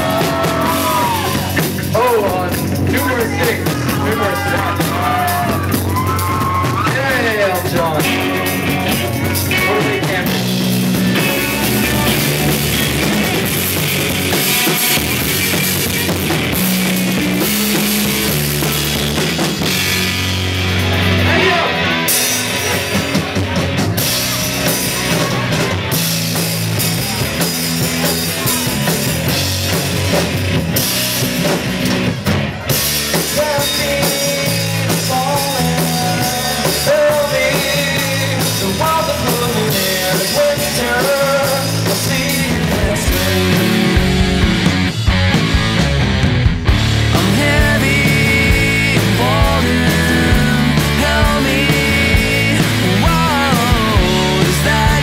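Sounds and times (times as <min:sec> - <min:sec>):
bass guitar: 0:00.0 - 0:55.0
drum kit: 0:00.0 - 0:55.0
electric guitar: 0:00.0 - 0:55.0.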